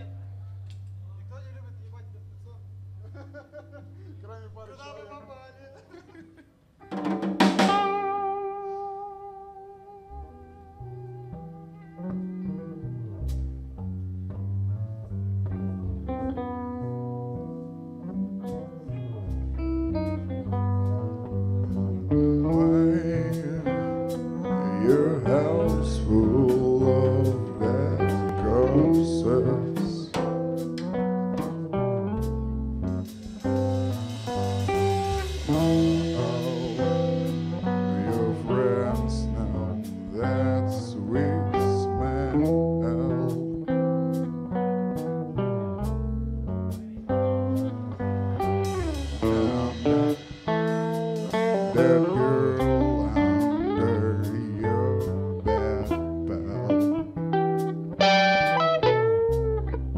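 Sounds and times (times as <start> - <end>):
guitar bent notes: 6.8 - 59.9
rock band playing live: 6.8 - 59.9.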